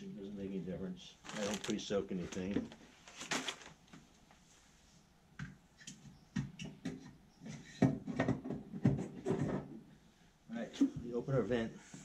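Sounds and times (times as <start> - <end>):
knocks and clanks of smoker parts: 6.4 - 9.7.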